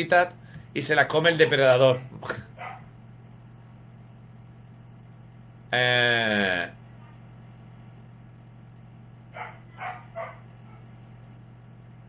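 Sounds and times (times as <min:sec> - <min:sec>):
man talking: 0:00.0 - 0:02.4, 0:05.7 - 0:06.8
steady low hum: 0:00.0 - 0:12.0.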